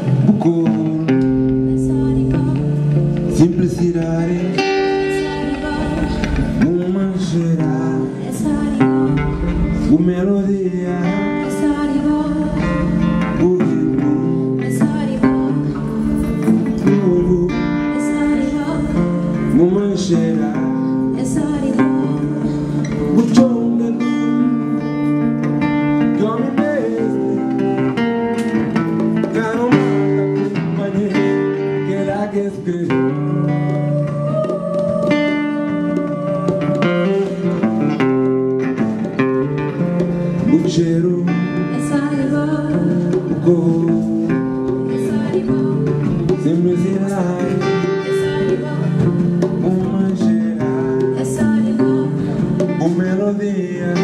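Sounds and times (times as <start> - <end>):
acoustic guitar playing: 0.0 - 54.0
drum kit: 0.0 - 54.0
person singing into a microphone: 0.0 - 54.0.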